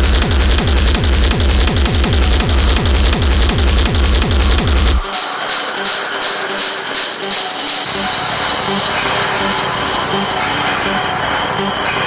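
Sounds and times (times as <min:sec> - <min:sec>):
fast hi-hat ticks: 0:00.0 - 0:08.2
industrial techno music: 0:00.0 - 0:12.0.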